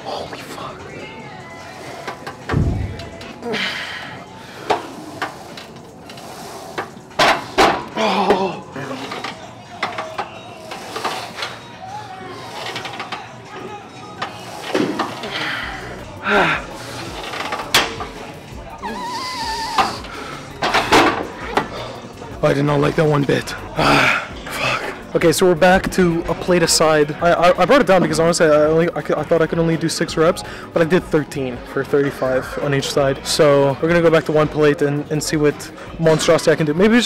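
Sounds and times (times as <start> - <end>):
man breathing hard and grunting: 3.4 - 5.1, 15.2 - 17.2, 23.7 - 25.0.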